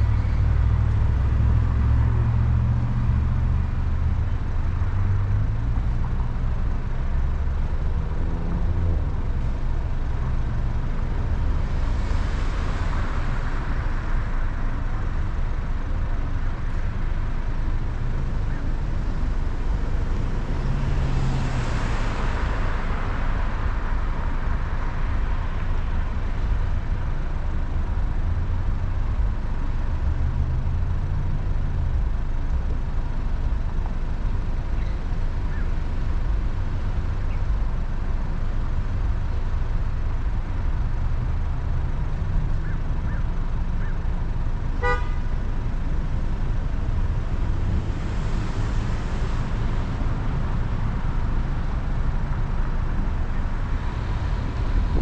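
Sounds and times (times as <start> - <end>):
vehicles passing: 0.0 - 55.0
car engine idling: 22.1 - 55.0.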